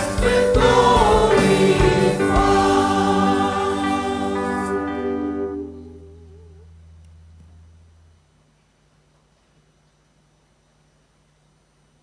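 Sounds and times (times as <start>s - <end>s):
choir singing: 0.0s - 5.8s
faint low hum: 2.5s - 12.0s.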